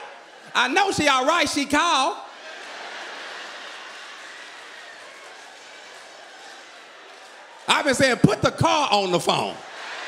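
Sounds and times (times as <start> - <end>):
audience laughing: 2.3 - 4.4.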